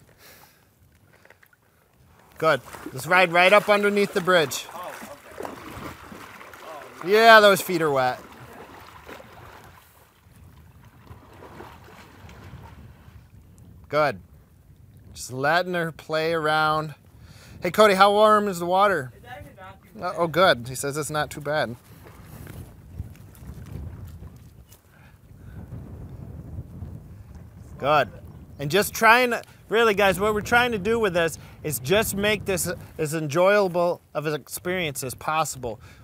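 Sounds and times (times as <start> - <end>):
water sloshing around horse legs: 1.0 - 13.4, 21.8 - 24.9
wind rumbling on microphone: 1.9 - 33.3.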